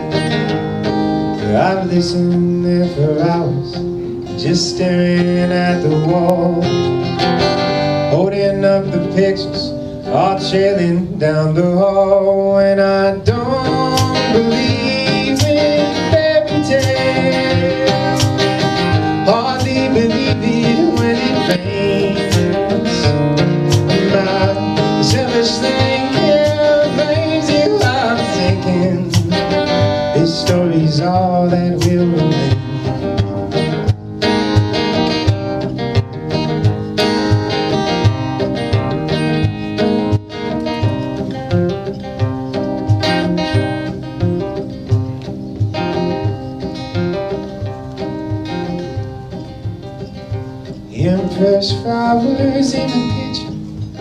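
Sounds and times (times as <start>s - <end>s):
acoustic guitar picking: 0.0s - 54.0s.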